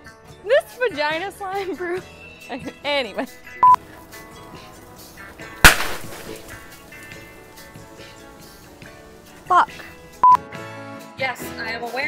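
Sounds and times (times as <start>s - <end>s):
quiet background music: 0.0s - 12.0s
water hose bursting bang: 5.5s - 8.2s.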